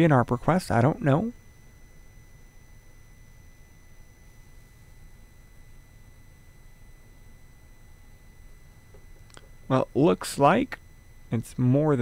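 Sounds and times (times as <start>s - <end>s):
low hum and hiss: 0.0s - 12.0s
thin high-pitched steady tones: 0.0s - 12.0s.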